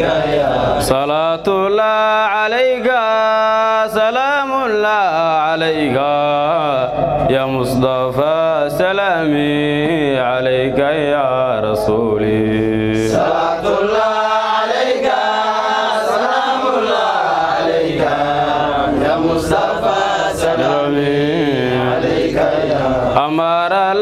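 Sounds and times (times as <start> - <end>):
man chanting devotional song: 0.0 - 24.0.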